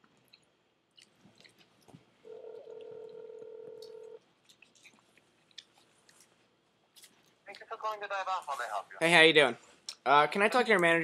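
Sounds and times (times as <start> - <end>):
telephone ringback tone: 2.3 - 4.2.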